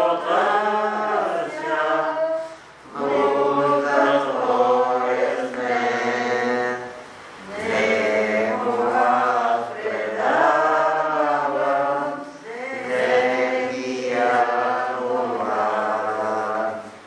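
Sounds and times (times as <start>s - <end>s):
choir chanting: 0.0s - 17.0s.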